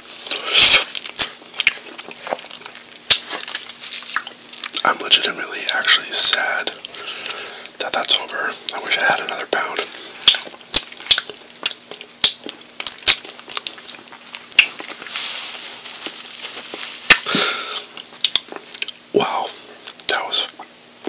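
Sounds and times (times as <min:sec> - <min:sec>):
cloth rubbing mouth: 0:00.3 - 0:01.0
licking fingers and lip smacking: 0:10.2 - 0:14.8.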